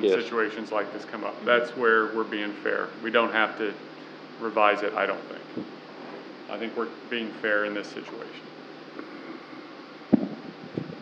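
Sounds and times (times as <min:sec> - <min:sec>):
fan-like room hum: 0:00.0 - 0:11.0
sharp low thump: 0:10.1 - 0:11.0.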